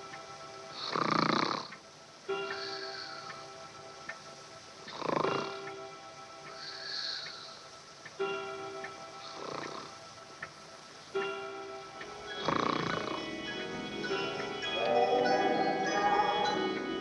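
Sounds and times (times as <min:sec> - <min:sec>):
soft orchestral music: 0:00.0 - 0:17.0
person snoring loudly: 0:00.8 - 0:01.7, 0:04.9 - 0:05.6, 0:12.4 - 0:13.2.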